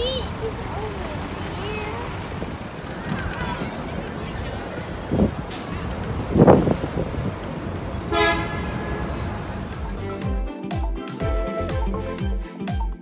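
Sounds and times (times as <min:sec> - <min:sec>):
city street traffic: 0:00.0 - 0:12.0
vehicle horn toot: 0:08.1 - 0:09.4
music with beating bass: 0:09.7 - 0:13.0.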